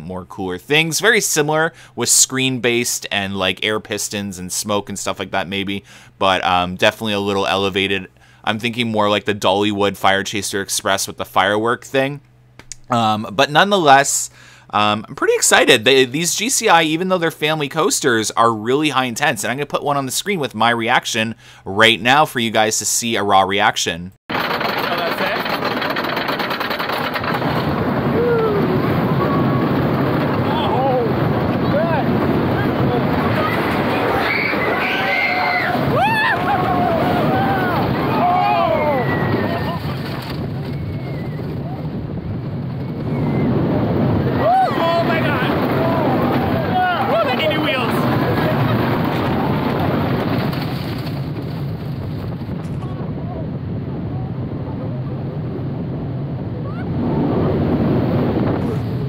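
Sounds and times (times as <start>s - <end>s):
roller coaster wind and rumble: 24.3s - 59.0s
riders laughing and screaming: 24.4s - 42.0s, 42.9s - 50.5s.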